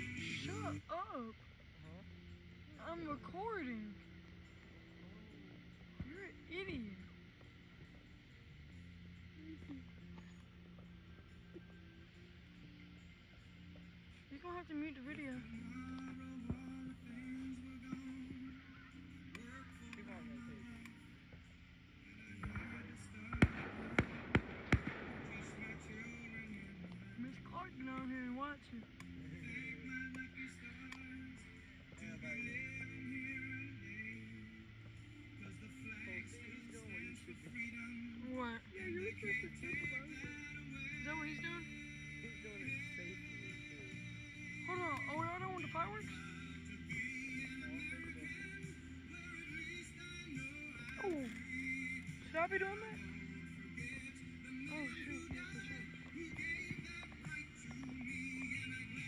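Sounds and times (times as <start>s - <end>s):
background music: 0.0s - 59.0s
scattered voices: 0.0s - 59.0s
fireworks bangs: 22.4s - 27.1s.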